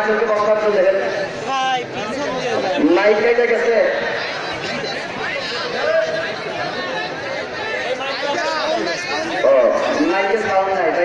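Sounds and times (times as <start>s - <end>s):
men talking: 2.0s - 11.0s.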